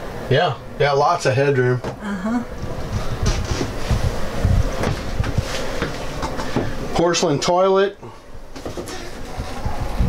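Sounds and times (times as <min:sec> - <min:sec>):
low rumbling: 0:02.0 - 0:06.2.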